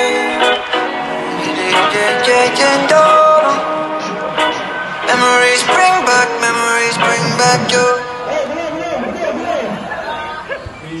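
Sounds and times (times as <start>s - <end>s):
people talking over one another: 3.8s - 10.5s.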